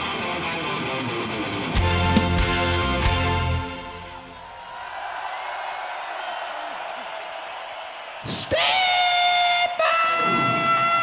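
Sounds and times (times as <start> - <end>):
man singing high wail: 8.3 - 11.0.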